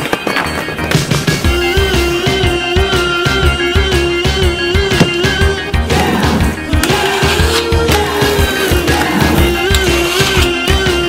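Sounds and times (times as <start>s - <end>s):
skateboard wheels rolling on concrete: 0.0s - 2.5s
music with steady beat: 0.1s - 11.0s.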